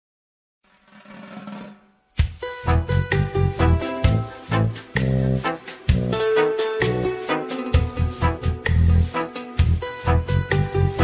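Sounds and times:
drum roll: 0.7 - 11.0.

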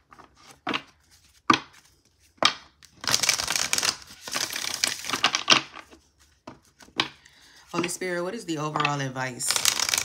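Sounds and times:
cards clacking: 0.0 - 10.0
cards rustling in shuffle: 0.0 - 10.0.

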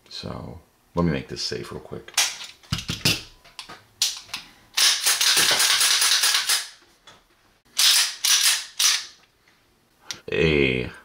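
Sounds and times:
pistol metal clatter: 4.0 - 6.8
pistol slide metallic clicks: 7.8 - 9.1.

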